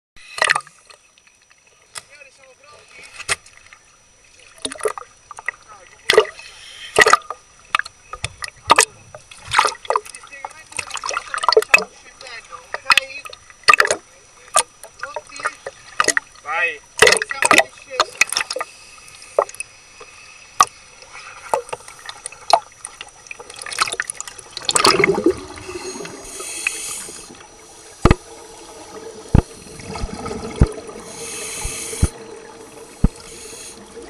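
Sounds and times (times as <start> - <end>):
sea water splashing: 0.2 - 34.0
underwater gurgling rush: 20.5 - 34.0
water splashing against camera housing: 28.0 - 28.3.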